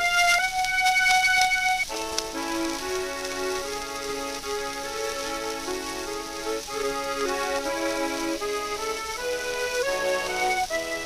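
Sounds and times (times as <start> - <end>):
record surface crackle and hiss: 0.0 - 11.0
solo accordion: 0.0 - 11.0.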